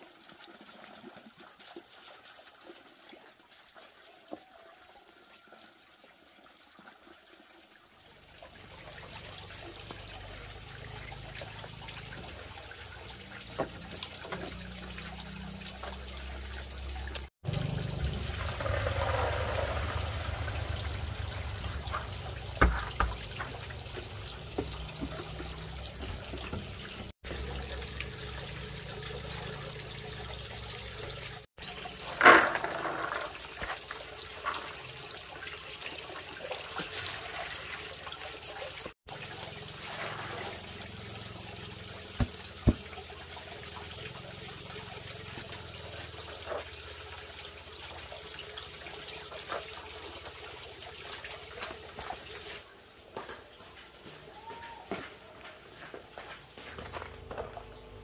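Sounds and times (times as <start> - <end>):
water running into a plastic basin: 0.0 - 52.7
plastic bowls knocking and splashing: 21.2 - 27.1, 32.0 - 34.8, 42.2 - 43.0.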